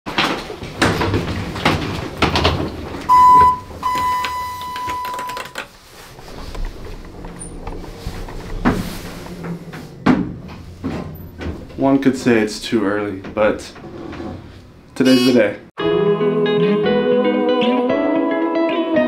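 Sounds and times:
knocks and clicks: 0.1s - 5.8s
elevator electronic beeps: 3.1s - 5.6s, 15.1s - 15.4s.

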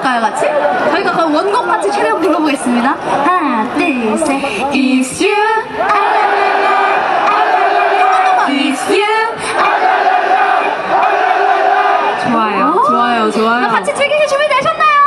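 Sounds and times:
crowd chanting with singers: 5.1s - 12.8s.

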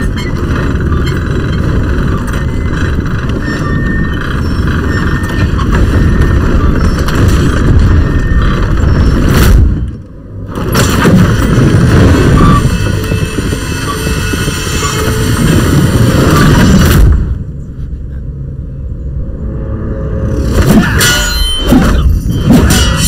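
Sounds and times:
deep rumble with booms: 0.0s - 17.8s.

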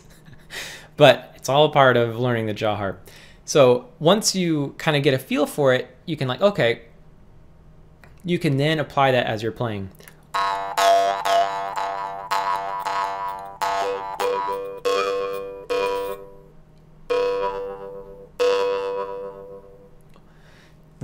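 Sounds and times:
jaw harp twanging: 10.3s - 20.0s.

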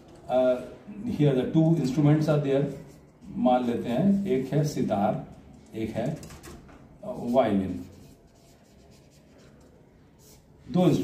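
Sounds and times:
man speaking: 0.3s - 6.2s, 7.0s - 7.9s, 10.6s - 11.0s
marker pen writing: 7.1s - 10.6s.

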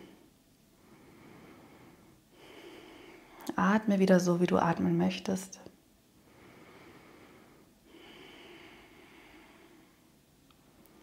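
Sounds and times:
faint calm breathing: 0.0s - 3.5s, 6.1s - 11.0s.

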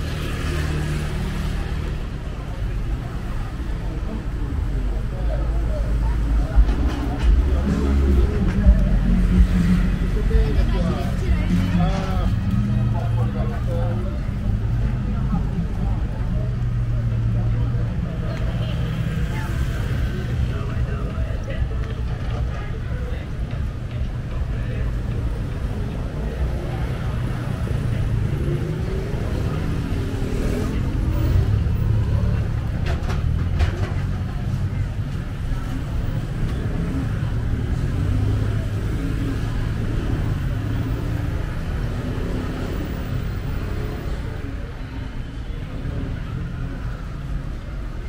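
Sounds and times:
cars and scooters passing: 0.0s - 48.0s.

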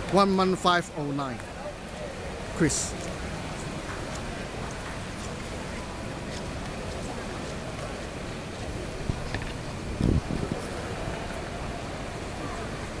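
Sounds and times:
background noise: 0.0s - 13.0s
voices of spectators and officials: 0.0s - 13.0s.

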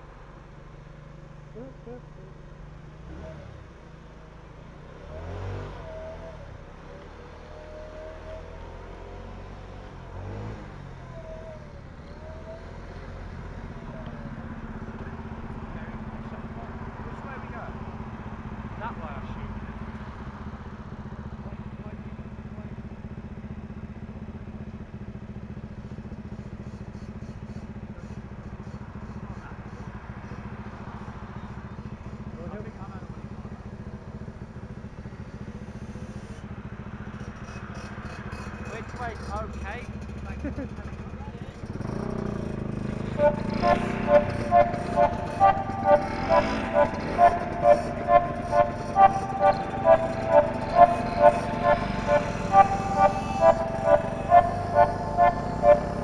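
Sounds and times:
motor scooter engine running: 9.3s - 56.0s
indistinct voices: 42.9s - 56.0s.

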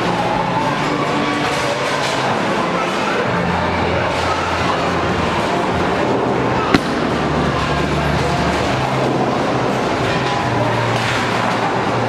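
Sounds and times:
chatter: 0.0s - 12.0s
music: 0.0s - 12.0s.

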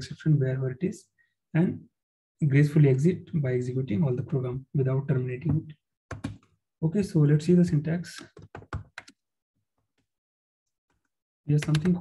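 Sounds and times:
keyboard key clicks: 11.6s - 12.0s.

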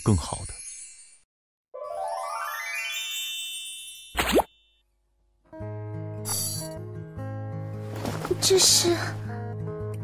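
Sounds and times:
rising sparkling chime: 1.8s - 4.2s
cartoon pop with upward swoop: 4.1s - 4.5s.

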